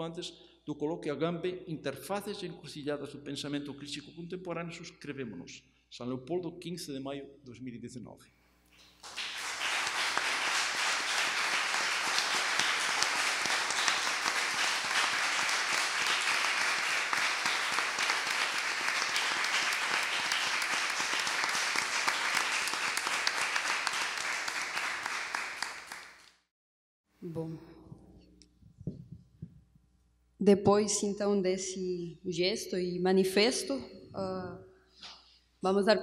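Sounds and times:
audience applauding: 0:09.0 - 0:26.4.

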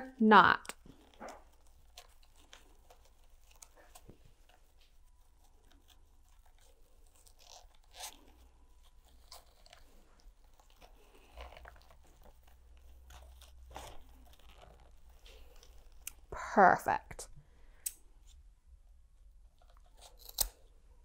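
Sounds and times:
twine rustling and crunching: 0:00.5 - 0:16.3.

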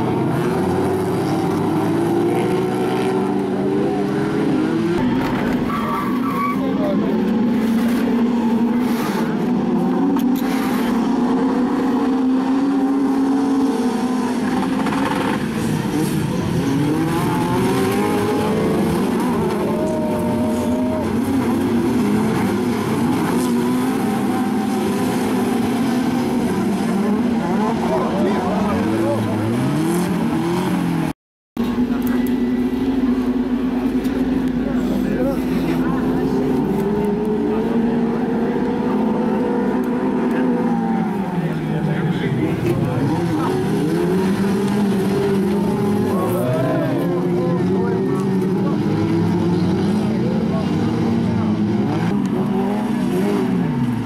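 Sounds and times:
race car engines revving: 0:00.0 - 0:54.0.

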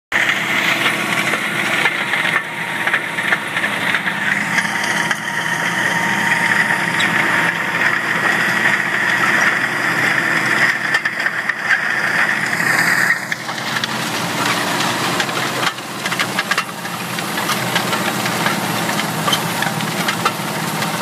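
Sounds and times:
tractor engine under heavy load: 0:00.1 - 0:21.0
high-pitched whine: 0:00.2 - 0:15.8.

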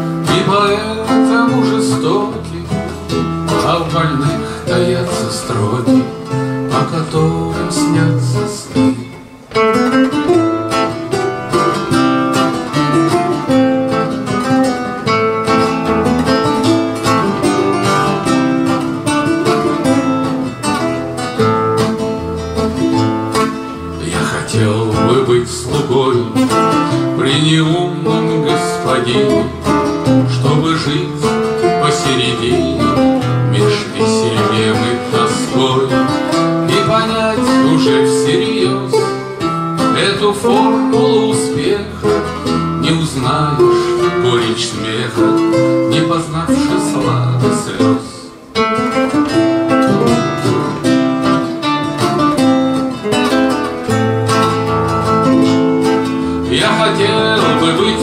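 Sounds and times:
two acoustic guitars playing: 0:00.0 - 0:58.0.

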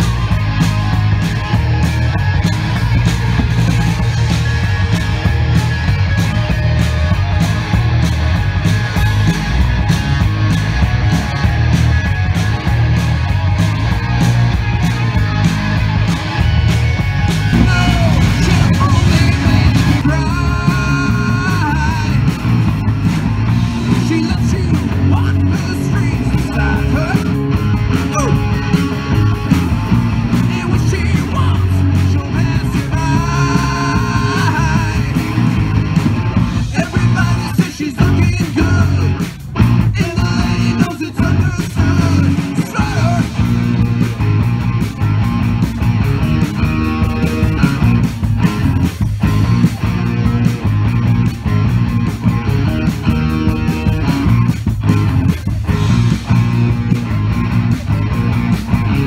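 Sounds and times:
electric guitar lead bending pitch: 0:00.0 - 0:59.0
live rock band playing: 0:00.0 - 0:59.0.

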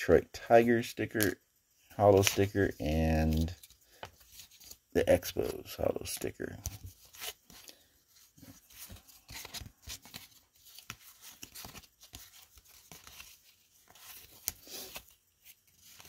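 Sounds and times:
cards sliding and flicking: 0:00.9 - 0:01.4, 0:02.0 - 0:16.0.

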